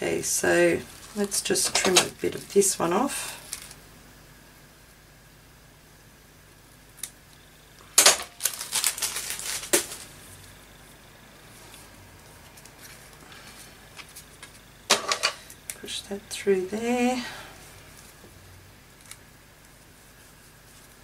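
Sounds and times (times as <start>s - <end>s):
paper and ribbon handling: 8.3s - 10.3s.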